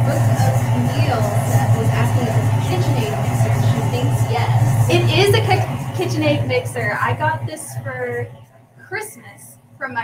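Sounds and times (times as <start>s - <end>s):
stand mixer beating dough: 0.0s - 7.2s.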